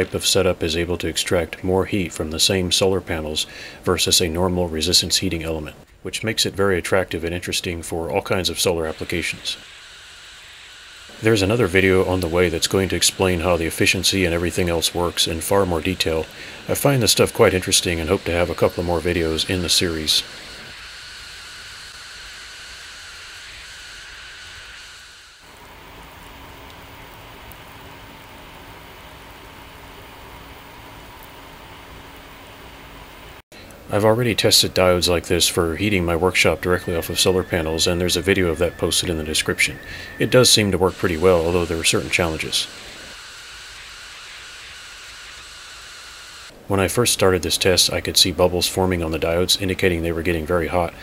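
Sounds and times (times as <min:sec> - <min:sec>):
water boiling with bubbling hiss: 0:00.0 - 0:33.4, 0:34.0 - 0:51.0
faint steady hum: 0:00.0 - 0:51.0.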